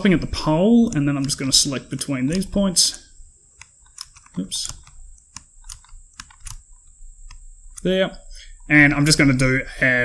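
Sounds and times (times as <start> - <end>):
computer mouse clicks: 0.8 - 1.7, 2.3 - 7.9
keyboard keystrokes: 3.6 - 6.6.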